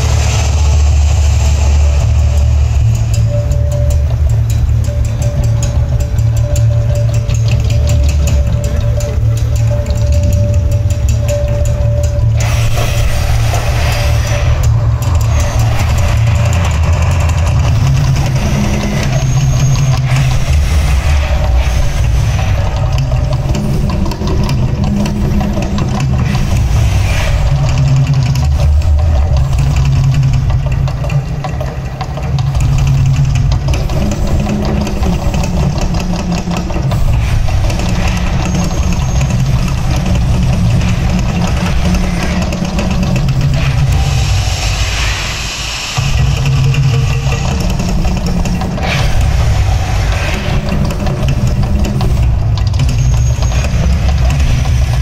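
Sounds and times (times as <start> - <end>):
deep rumble from loudspeakers: 0.0 - 55.0
gas flame bursts: 12.4 - 23.4, 43.0 - 47.9.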